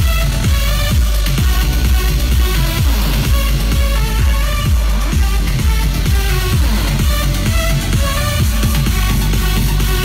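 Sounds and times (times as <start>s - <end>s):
loud electro house music: 0.0s - 10.0s.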